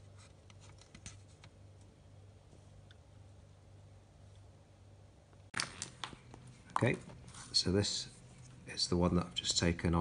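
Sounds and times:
faint low hum: 0.0s - 10.0s
paper rustling: 5.6s - 8.6s.

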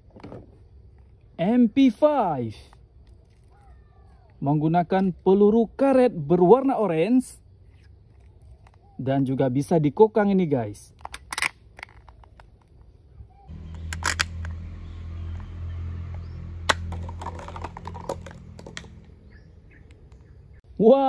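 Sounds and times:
toy gun being cocked: 11.0s - 12.4s, 13.7s - 14.5s.

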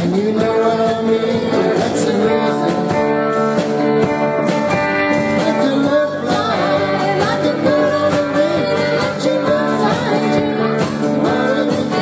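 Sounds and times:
drums: 0.0s - 12.0s
electric guitar: 0.0s - 12.0s
woman singing: 5.6s - 12.0s.

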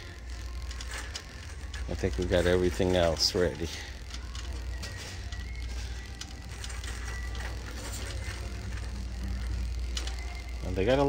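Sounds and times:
rattling wheel clicks: 0.0s - 10.5s
shopping cart rolling: 0.0s - 11.0s.

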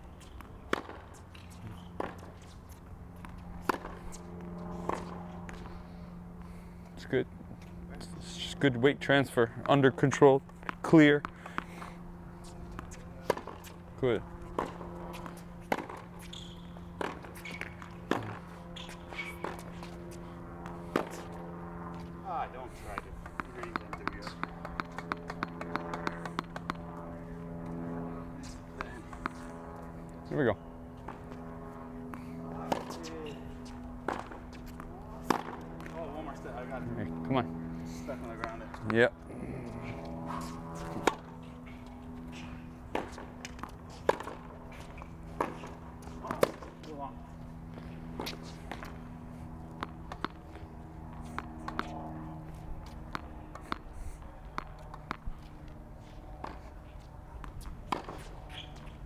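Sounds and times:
steady low hum: 0.0s - 59.0s
tennis ball bouncing: 0.1s - 5.7s, 12.5s - 22.1s, 22.9s - 27.0s, 28.4s - 29.9s, 31.0s - 36.7s, 40.3s - 59.0s
racket striking tennis ball: 0.2s - 5.6s, 12.7s - 13.8s, 14.4s - 20.2s, 20.9s - 22.1s, 23.0s - 26.8s, 32.1s - 36.5s, 40.3s - 46.9s, 47.8s - 49.2s, 49.8s - 55.5s, 56.1s - 59.0s
shoe squeak on court: 16.2s - 16.8s, 17.4s - 17.9s, 18.7s - 19.5s, 58.2s - 59.0s.

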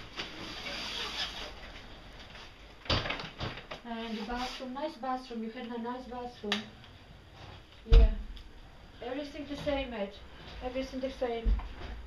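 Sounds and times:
faint shuffling: 3.8s - 5.7s.

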